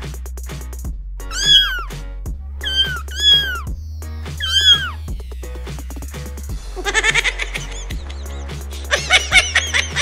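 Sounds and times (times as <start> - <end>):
background music with steady beat: 0.0 - 10.0
kitten meows: 1.3 - 2.0, 2.6 - 3.8, 4.4 - 5.1.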